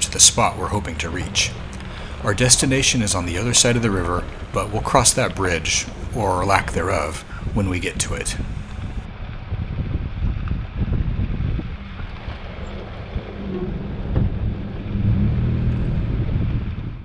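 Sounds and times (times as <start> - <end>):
pickup engine and tyre rumble: 0.0 - 17.0
wind buffeting microphone: 0.0 - 17.0.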